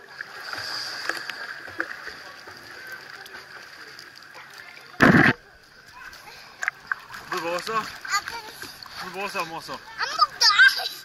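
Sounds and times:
pool water lapping and splashing: 0.0s - 11.0s.

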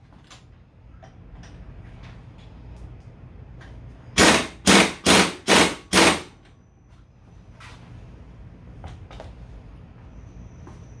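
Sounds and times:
pneumatic impact wrench bursts: 4.2s - 6.4s.

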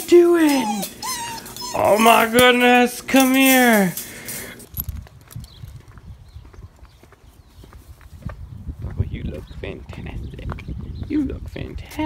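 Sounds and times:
dog paws clicking on concrete: 0.0s - 12.0s
footsteps on concrete: 3.8s - 12.0s.

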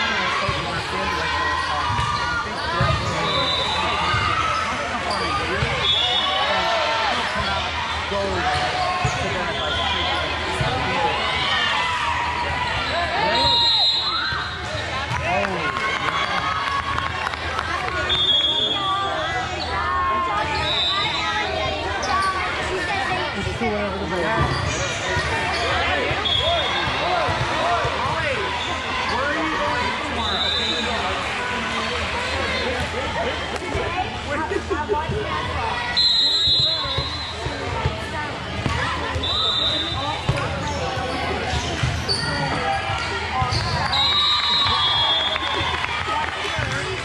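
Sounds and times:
referee whistle blasts: 13.2s - 14.3s, 36.0s - 37.5s, 39.2s - 40.1s, 43.9s - 45.6s.

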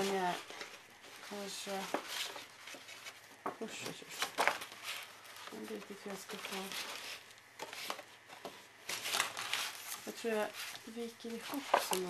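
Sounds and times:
paper sheet rustling: 0.0s - 12.0s.

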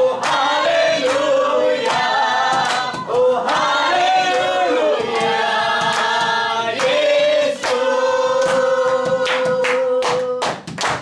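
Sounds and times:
group singing devotional song: 0.0s - 10.4s
hand claps: 0.2s - 11.0s.

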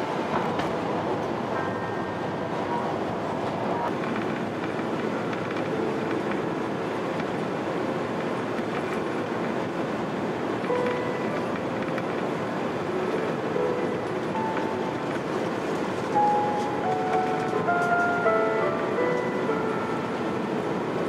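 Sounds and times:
airplane cabin engine roar: 0.0s - 21.0s
background music melody: 10.6s - 21.0s.

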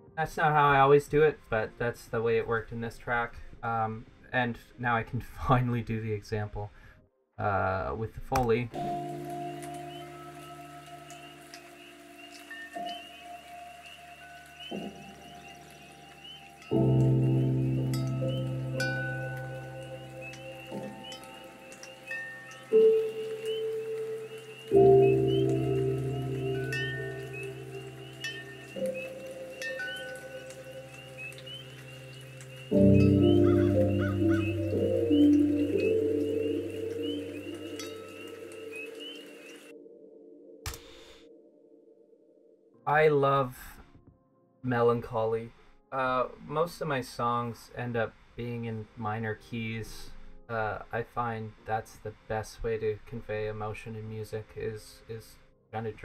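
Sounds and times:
soft piano chords: 8.7s - 40.7s
frogs chirping: 8.8s - 40.1s
high twinkly notes: 9.5s - 39.8s.

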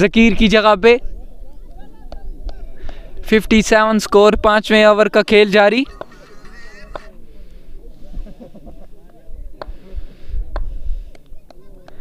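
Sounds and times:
chatter of spectators' voices: 0.8s - 12.0s.

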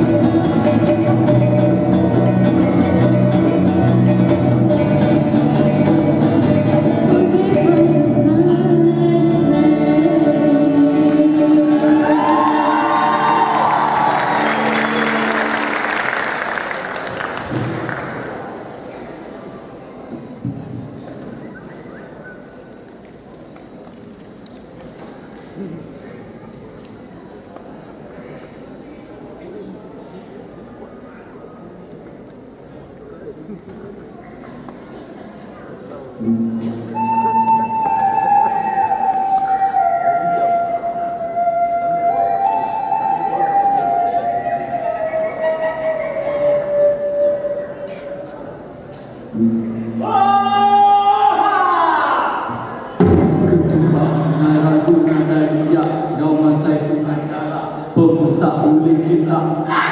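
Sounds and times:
murmur of voices: 0.0s - 59.9s.

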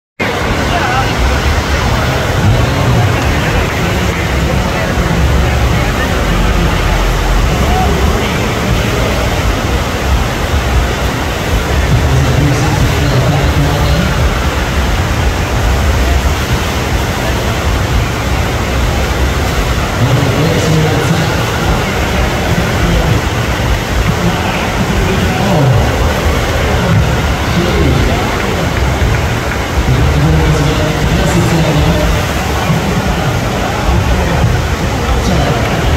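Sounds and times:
rushing water from wave machine: 0.2s - 35.9s
low rumble: 0.3s - 35.9s.

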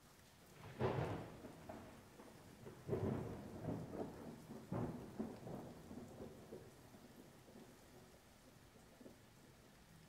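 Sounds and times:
steady rain: 0.0s - 10.0s
thunder rumbling: 0.6s - 7.7s.

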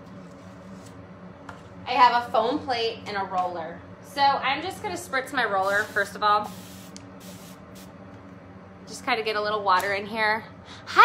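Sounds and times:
spray bottle hissing sprays: 5.6s - 7.9s.

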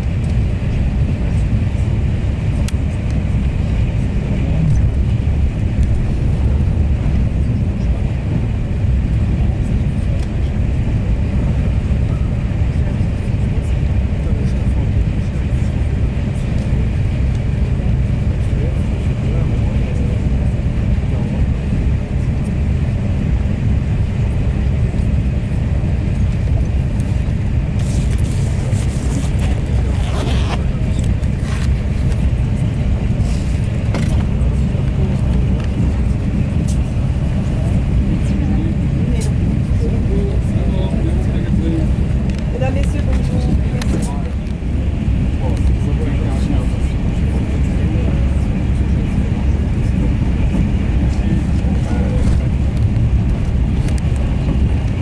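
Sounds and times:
train rumbling at speed: 0.0s - 55.0s.

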